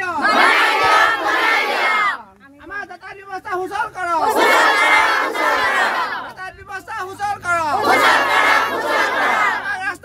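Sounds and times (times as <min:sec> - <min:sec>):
crowd shouting a slogan: 0:00.0 - 0:02.3, 0:03.9 - 0:06.5, 0:07.3 - 0:10.0.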